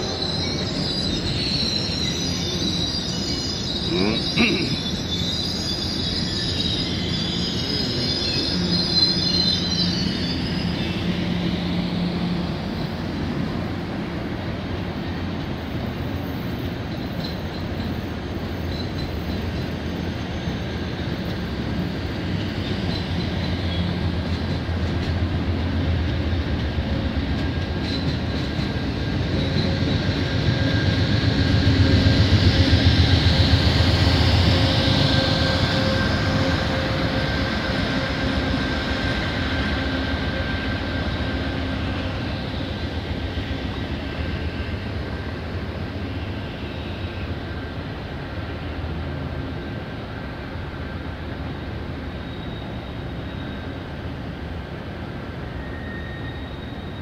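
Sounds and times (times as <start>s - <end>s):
diesel locomotive engine: 0.0s - 57.0s
train cars rumbling over track: 0.0s - 57.0s
train wheels squealing on rails: 0.0s - 57.0s.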